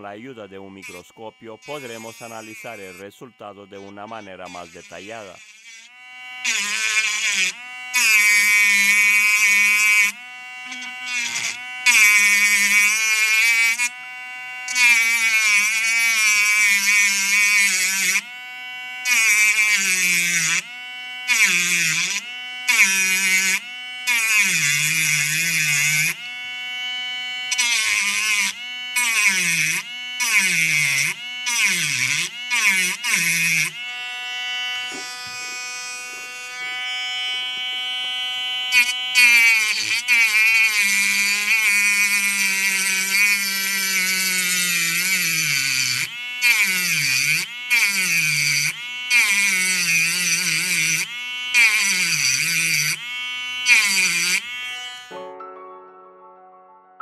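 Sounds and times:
rotary cutter whining on metal: 0.0s - 55.2s.

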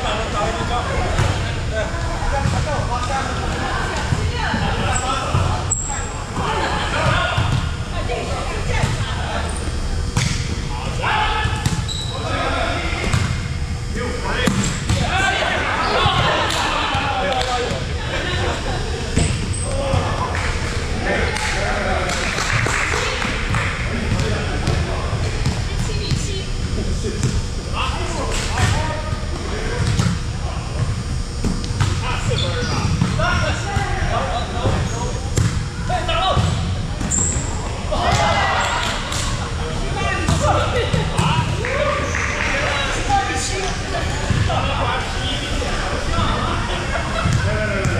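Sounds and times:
volleyball thumping on gym floor: 14.4s - 15.1s, 34.6s - 35.7s.

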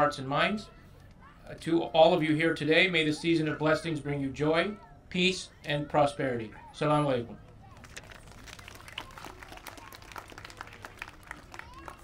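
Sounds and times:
scattered applause: 7.6s - 12.0s.

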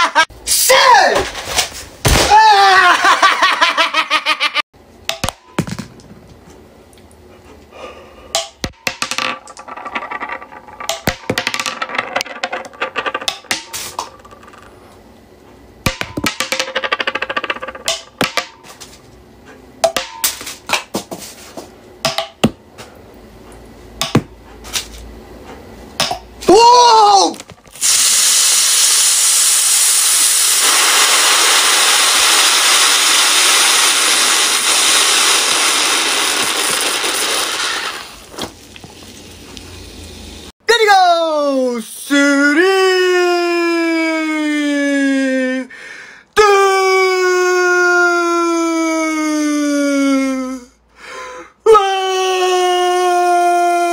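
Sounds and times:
man's long high-pitched cry: 2.3s - 3.2s, 26.5s - 27.4s, 40.8s - 45.7s, 46.4s - 50.8s, 51.6s - 53.9s.

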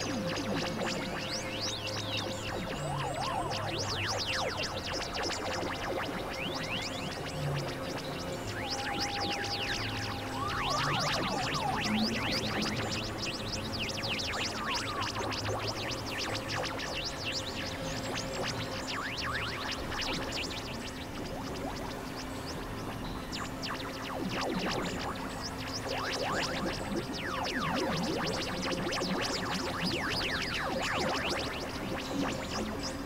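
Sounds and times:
chirp-like pitch sweeps: 0.0s - 33.0s.

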